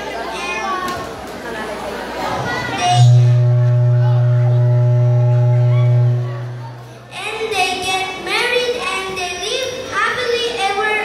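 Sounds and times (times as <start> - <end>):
electrical hum through pa system: 2.8 - 8.1.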